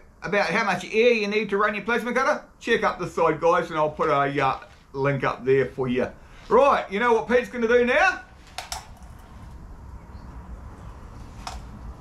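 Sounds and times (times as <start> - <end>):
low steady rumble: 7.6 - 12.0.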